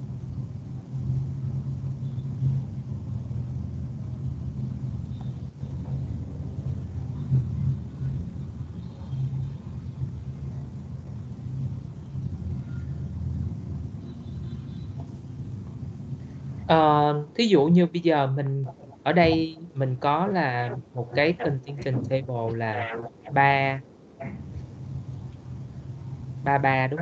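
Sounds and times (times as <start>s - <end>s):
low rumble of background noise: 0.0s - 27.0s.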